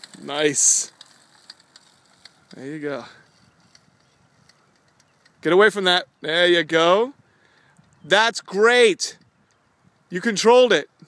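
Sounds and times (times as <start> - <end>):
open-air background hiss: 0.0 - 11.0
man speaking: 0.2 - 0.9, 2.5 - 3.2, 5.4 - 7.2, 10.1 - 11.0
faint ticks: 3.2 - 5.4.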